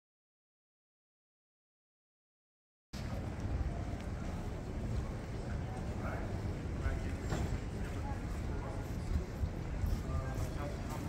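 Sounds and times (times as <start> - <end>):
steady background noise: 3.0 - 11.0.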